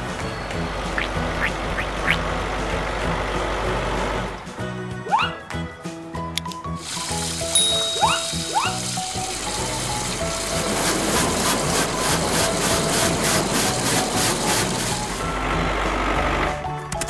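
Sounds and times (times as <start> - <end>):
low engine rumble: 0.0 - 5.0, 8.8 - 16.8
children's background music: 0.0 - 17.0
hiss of spraying water: 6.8 - 15.3.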